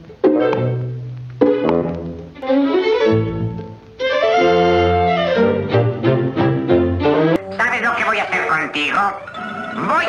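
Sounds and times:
orchestral strings playing: 1.4s - 7.6s.

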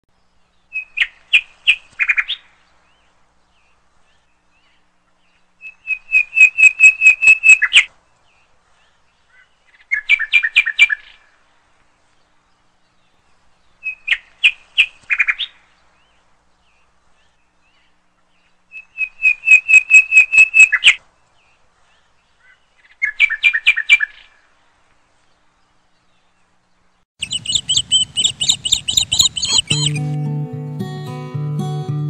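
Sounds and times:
bird singing quick chirps: 5.6s - 7.9s, 18.7s - 21.0s, 27.2s - 30.2s.

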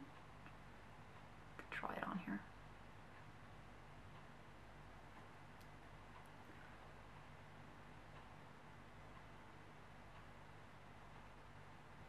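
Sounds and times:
woman whispering: 1.6s - 2.5s.

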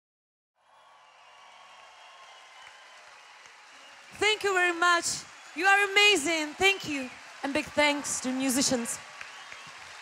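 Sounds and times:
faint audience applause: 0.6s - 10.0s.

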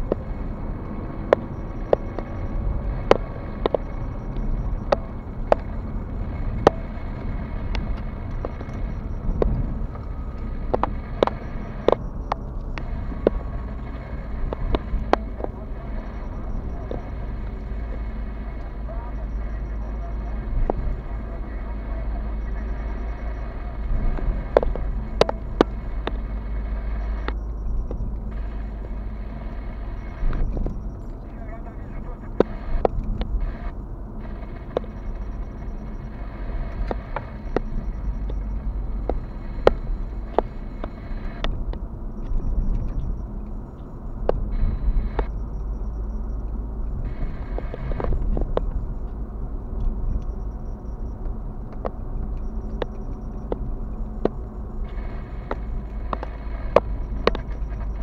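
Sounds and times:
car engine and tyre rumble: 0.0s - 58.0s.

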